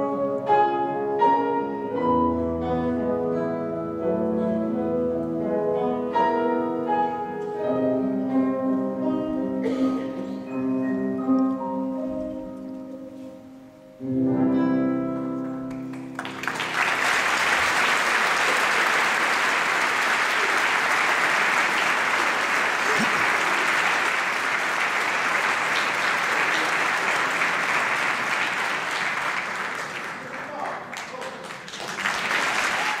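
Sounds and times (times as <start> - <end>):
audience applause: 15.8 - 33.0.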